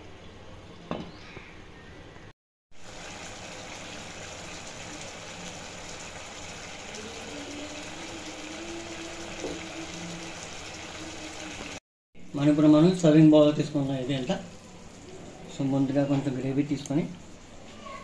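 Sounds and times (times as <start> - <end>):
curry simmering in a pan: 2.8 - 11.8.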